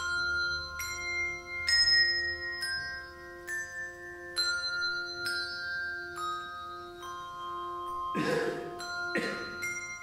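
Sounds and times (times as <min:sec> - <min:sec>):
handbells playing slow melody: 0:00.0 - 0:10.0.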